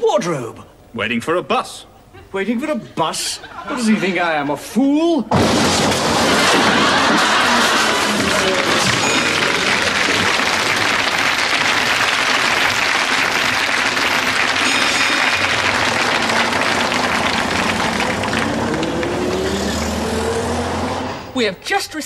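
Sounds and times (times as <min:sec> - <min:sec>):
audience applauding: 0:06.1 - 0:20.9
bus engine running: 0:15.4 - 0:21.3.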